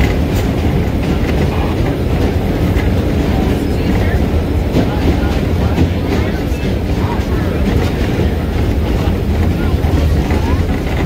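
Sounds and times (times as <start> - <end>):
subway train rumbling in tunnel: 0.0 - 11.0
wheels clicking over rail joints: 0.0 - 11.0.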